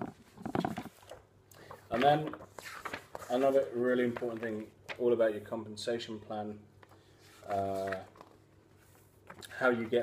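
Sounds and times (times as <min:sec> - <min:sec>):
paper booklet rustling: 0:00.2 - 0:05.5, 0:06.3 - 0:10.0.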